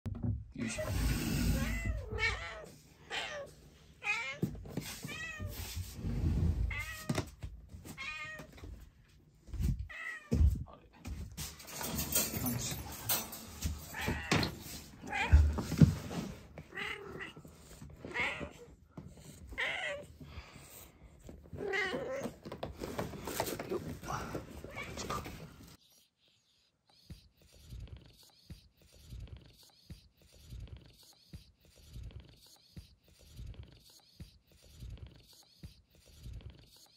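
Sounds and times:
cat meowing: 1.5 - 5.7, 6.7 - 7.3, 8.0 - 8.5, 9.9 - 10.4, 13.9 - 15.6, 16.7 - 17.4, 19.5 - 20.1, 21.6 - 22.4.

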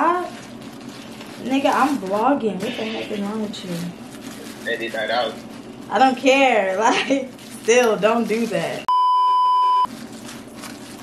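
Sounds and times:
electronic censor beep: 8.9 - 9.9.

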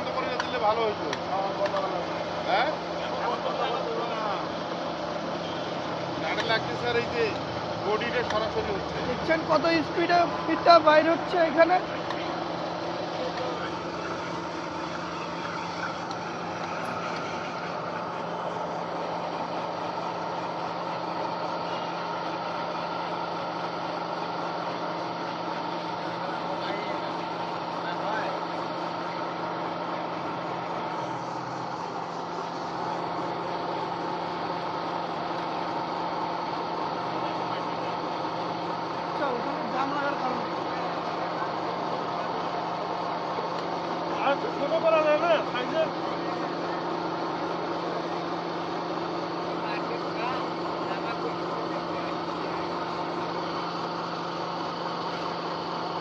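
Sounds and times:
pellet mill motor drone: 0.0 - 56.0.

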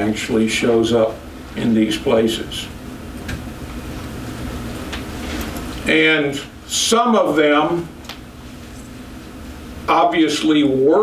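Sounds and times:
room hum: 0.0 - 11.0.

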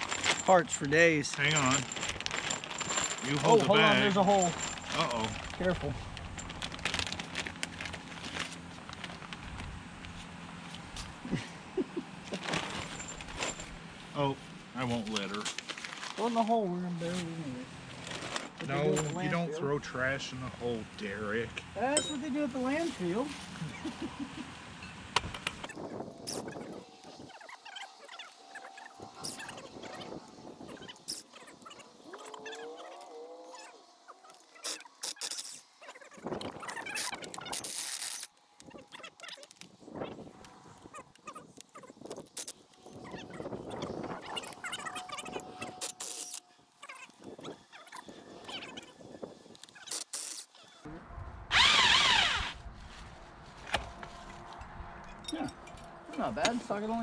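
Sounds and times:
gliding squeal: 42.8 - 50.0
cordless drill whining: 51.5 - 52.6.

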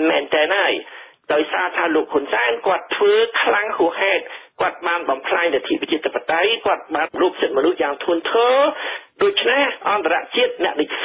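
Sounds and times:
person reading radio news: 0.0 - 11.0.

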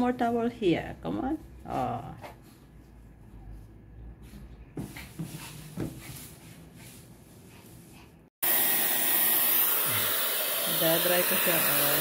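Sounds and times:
hair dryer blowing: 8.4 - 12.0.

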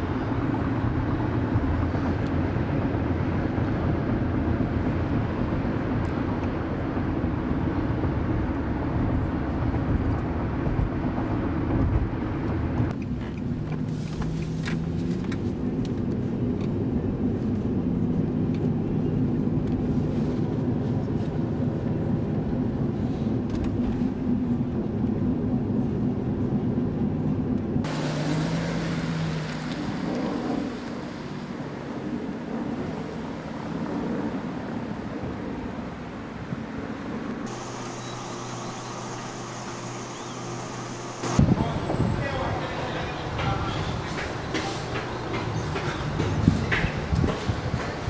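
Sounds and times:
car cabin engine and road noise: 0.0 - 48.0
car driving along street: 0.0 - 48.0
steady hum: 37.5 - 43.5.

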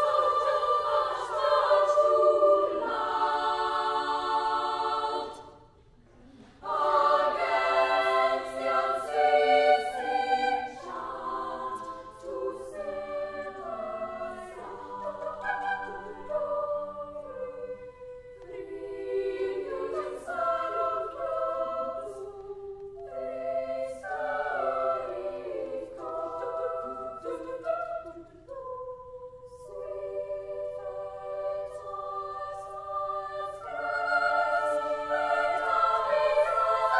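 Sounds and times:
girls' choir singing in harmony: 0.0 - 36.9.

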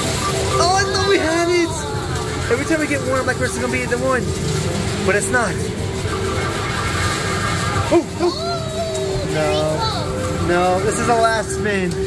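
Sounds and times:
arcade machines din: 0.0 - 12.0.

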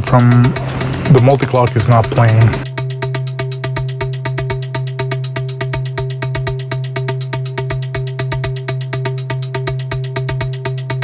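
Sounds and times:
held synth notes: 0.0 - 2.7
sustained low bass tone: 0.0 - 6.6.

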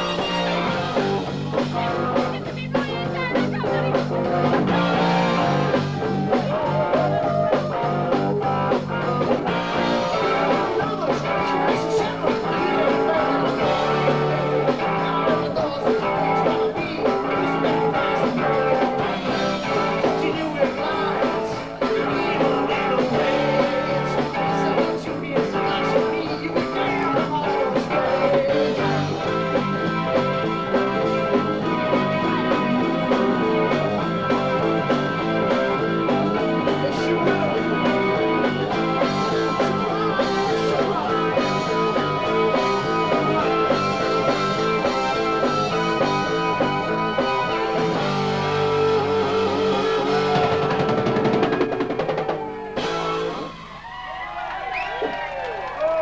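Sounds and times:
drum kit: 0.0 - 55.2
electric guitar: 0.0 - 56.0.

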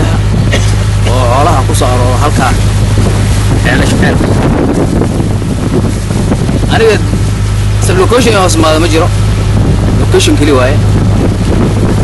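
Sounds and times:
steady low hum: 0.0 - 12.0
wind buffeting microphone: 0.0 - 12.0.

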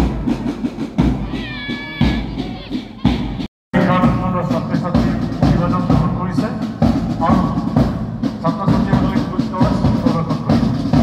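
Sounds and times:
bass drum beating: 0.0 - 11.0.

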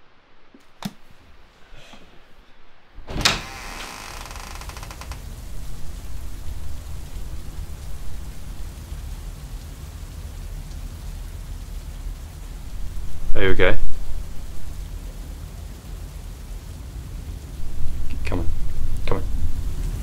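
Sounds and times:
rain and storm rumble: 0.0 - 20.0.

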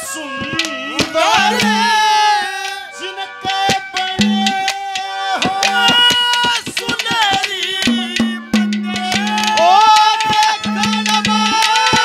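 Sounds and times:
man singing long notes: 0.0 - 12.0
sharp hand-drum strokes: 0.4 - 2.1, 3.4 - 12.0.

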